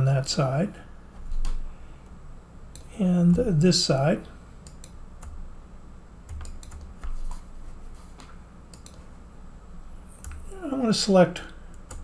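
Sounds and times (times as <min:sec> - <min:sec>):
computer keyboard and mouse clicks: 0:06.3 - 0:07.4, 0:08.7 - 0:09.0.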